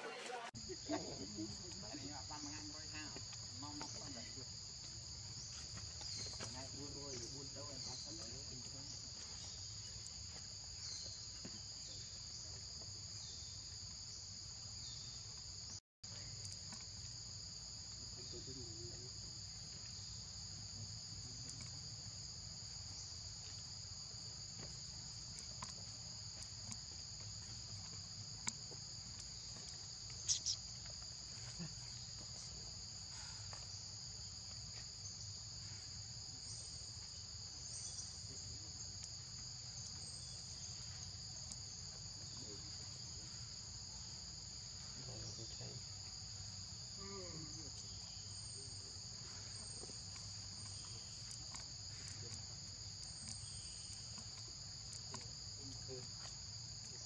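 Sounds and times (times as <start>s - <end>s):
insects droning: 0.1s - 57.0s.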